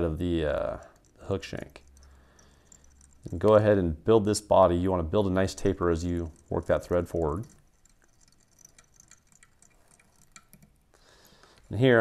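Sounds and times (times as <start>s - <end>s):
thread wrapping ticks: 0.0s - 11.8s.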